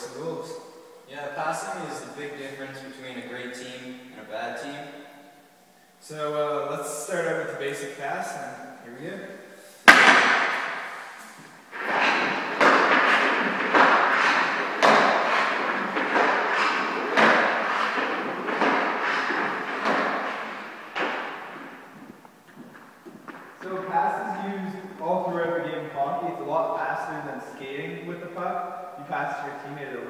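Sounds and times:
hockey puck clacking on sticks: 9.9s - 24.5s.

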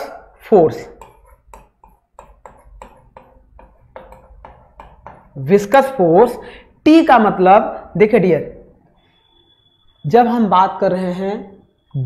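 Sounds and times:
marker pen writing on whiteboard: 0.0s - 6.4s.

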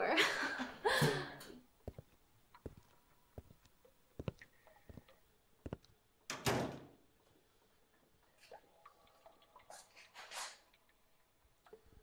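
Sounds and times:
door shutting with heavy thud: 6.3s - 6.9s.

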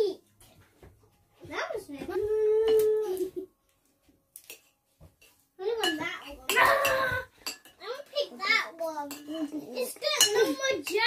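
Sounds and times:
child talking: 1.4s - 3.4s, 5.6s - 11.0s
cutlery clinking on ceramic plate: 4.4s - 8.1s, 9.0s - 11.0s.

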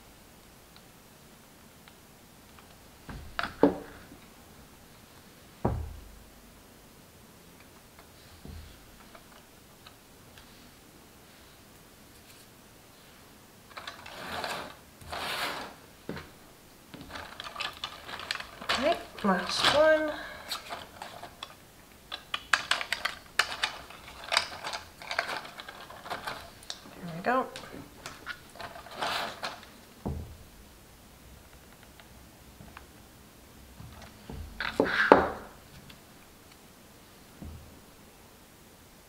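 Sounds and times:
dull knock: 5.6s - 6.1s
cardstock paper rustling: 17.0s - 29.8s.

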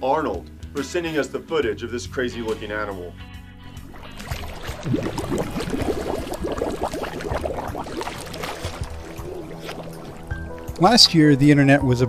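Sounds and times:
music with low sustained notes: 0.0s - 12.0s.

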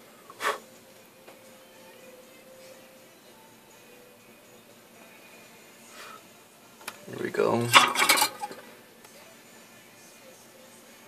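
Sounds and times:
soldering iron clattering in metal stand: 7.6s - 8.6s.

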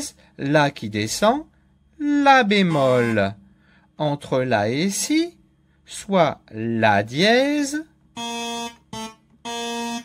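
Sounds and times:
electronic keyboard note: 2.7s - 3.4s, 8.1s - 10.0s.

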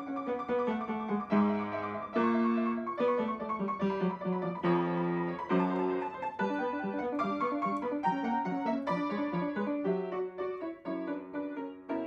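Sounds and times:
slow solo piano chords: 0.0s - 12.0s.

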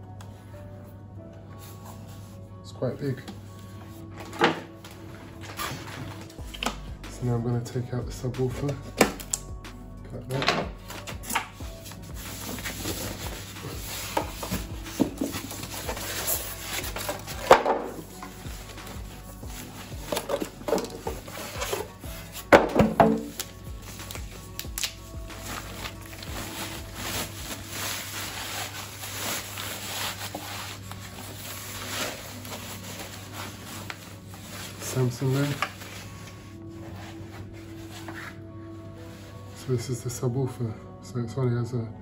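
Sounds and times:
faint background music: 0.0s - 42.0s
plastic wrap rustling: 10.9s - 39.6s
sharp packaging noises: 19.6s - 36.2s
polystyrene foam pulled off: 23.2s - 38.4s.

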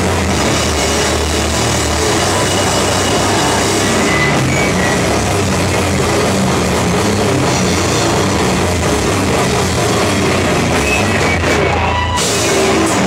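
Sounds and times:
rock band playing: 0.0s - 13.0s.

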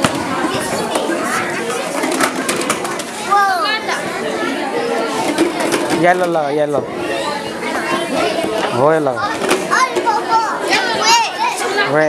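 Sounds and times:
children chattering in echoing room: 0.0s - 12.0s.

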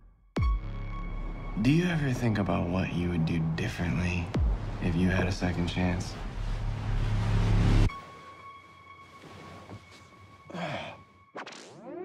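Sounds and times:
low rumble: 1.0s - 7.9s.

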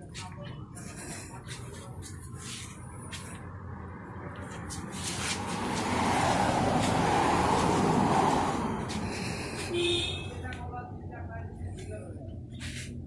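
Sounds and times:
engine humming: 0.0s - 13.0s.

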